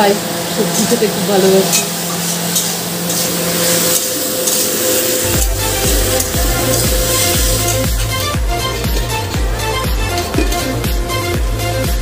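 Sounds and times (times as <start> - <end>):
food sizzling in oil: 0.0 - 11.0
background music with steady beat: 4.4 - 12.0.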